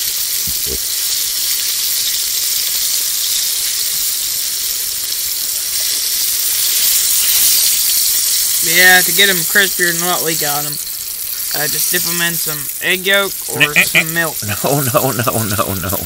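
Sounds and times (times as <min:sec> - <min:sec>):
grease sizzling in a pan: 0:00.0 - 0:16.0.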